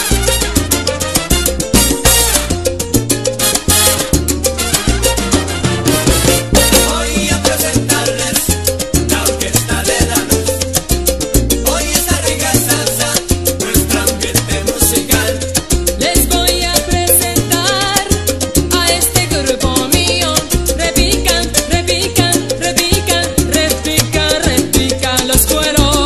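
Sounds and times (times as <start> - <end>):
salsa band music: 0.0 - 26.0.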